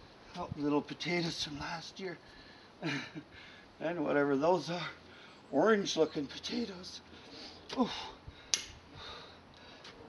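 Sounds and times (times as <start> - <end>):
sharp click: 8.5 - 8.8.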